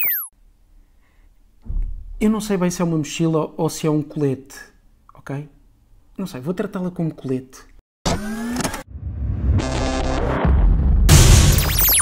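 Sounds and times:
fast rhythmic electronic build-up: 9.5s - 12.0s.

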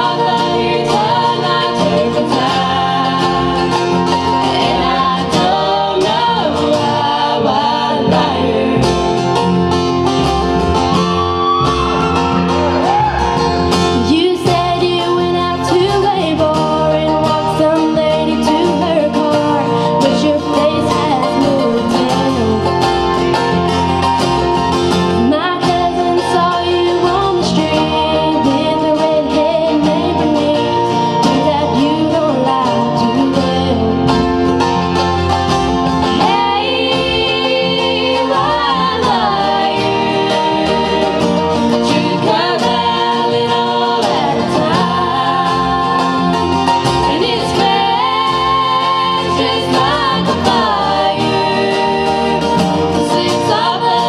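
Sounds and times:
people singing: 0.0s - 23.8s, 25.0s - 35.0s, 35.8s - 54.0s
mandolin: 0.0s - 54.0s
strummed acoustic guitar: 0.0s - 54.0s
upright double bass: 0.0s - 54.0s.

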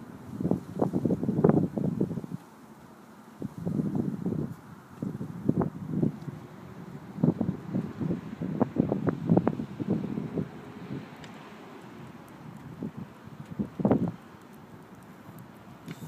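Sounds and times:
wind buffeting microphone: 0.0s - 2.4s, 3.4s - 16.0s.

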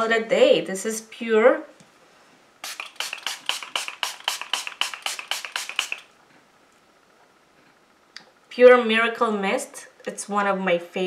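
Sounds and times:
mist bottle spraying: 2.6s - 6.1s.

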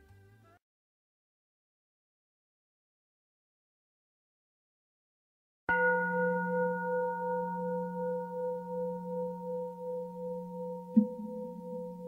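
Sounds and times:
singing bowl ringing: 5.7s - 12.0s.

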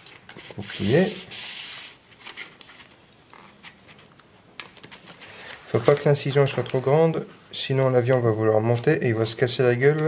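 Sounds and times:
paper rustling and creasing: 0.0s - 10.0s.

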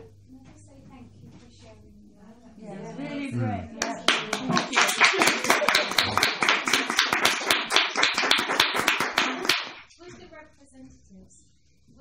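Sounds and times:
audience applauding: 3.8s - 9.9s.

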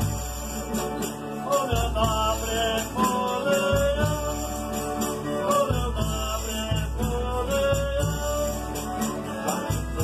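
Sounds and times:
strummed acoustic guitar: 0.0s - 10.0s
men singing together: 0.7s - 10.0s.

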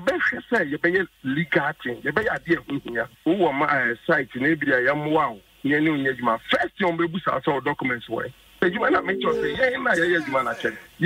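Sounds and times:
person talking on radio: 8.8s - 10.9s.

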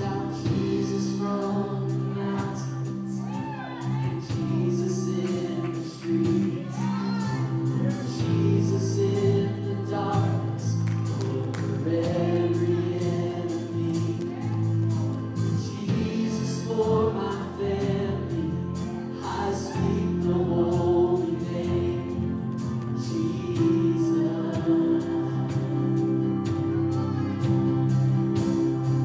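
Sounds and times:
acoustic guitar: 0.0s - 29.0s
bass guitar: 0.0s - 29.0s
drum kit beat: 0.0s - 29.0s
group vocals: 0.0s - 29.0s
keyboard: 0.0s - 29.0s.

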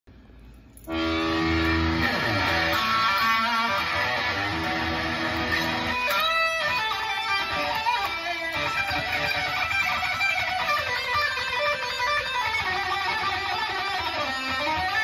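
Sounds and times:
electric guitar playing: 0.8s - 15.0s.

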